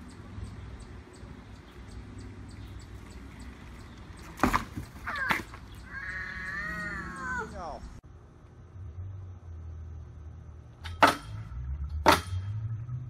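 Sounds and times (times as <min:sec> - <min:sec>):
bike knocking plastic bin: 0:04.2 - 0:05.6
young child wailing: 0:05.1 - 0:07.6.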